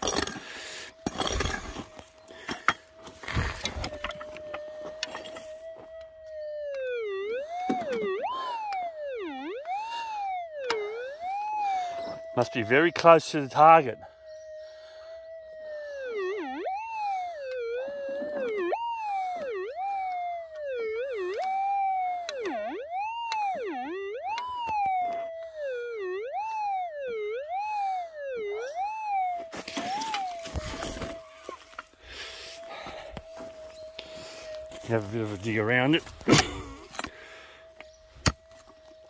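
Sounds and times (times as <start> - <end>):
metal detector target signal: 1.0 - 5.7, 29.5 - 31.9.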